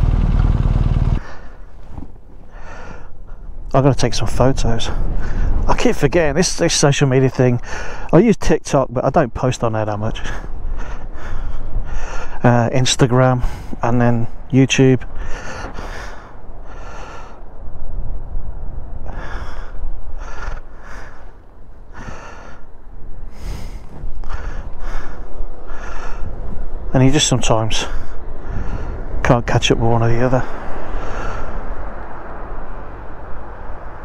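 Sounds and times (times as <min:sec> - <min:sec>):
low steady rumble: 0:00.0 - 0:02.5
wind blowing over microphone: 0:00.0 - 0:07.9, 0:09.2 - 0:34.0
man breathing: 0:01.2 - 0:01.7, 0:02.5 - 0:03.6, 0:07.6 - 0:08.1, 0:10.4 - 0:12.4, 0:15.1 - 0:17.6, 0:19.0 - 0:26.6, 0:27.9 - 0:29.2, 0:30.5 - 0:31.9.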